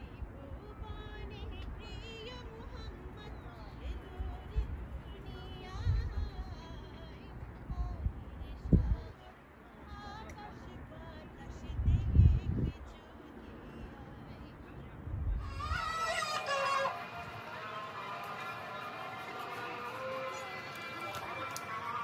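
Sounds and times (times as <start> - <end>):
low rumbles on microphone: 5.7 - 6.7, 7.6 - 9.1, 11.6 - 13.0.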